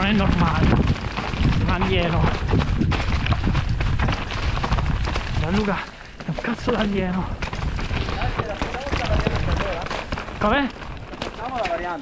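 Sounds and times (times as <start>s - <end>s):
mountain bike rattling over rocks: 0.0s - 12.0s.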